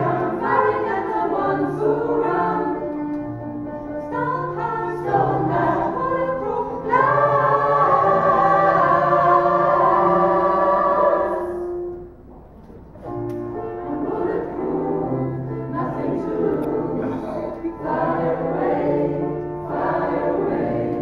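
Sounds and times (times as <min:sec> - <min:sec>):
mixed choir singing pop song: 0:00.0 - 0:03.2, 0:04.0 - 0:11.9, 0:13.8 - 0:21.0
piano accompaniment: 0:00.0 - 0:21.0.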